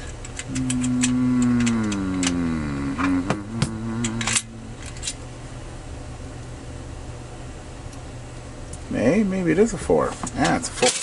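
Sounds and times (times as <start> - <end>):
man humming: 0.4 - 5.2.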